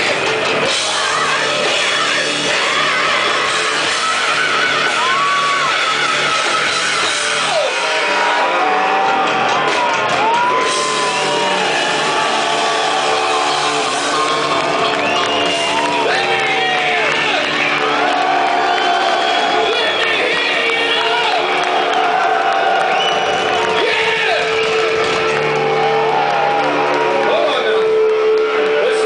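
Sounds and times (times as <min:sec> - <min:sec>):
heavy metal band playing: 0:00.0 - 0:29.0
shouted high lead vocal: 0:00.7 - 0:09.0.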